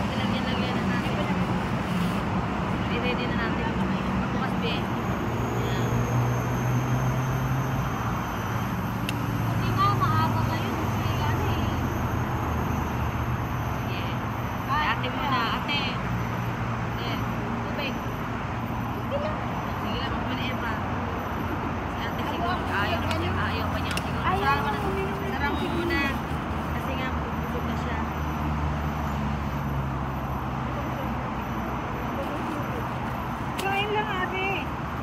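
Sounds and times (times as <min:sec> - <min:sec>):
city traffic hum: 0:00.0 - 0:35.0
people talking quietly: 0:29.5 - 0:35.0.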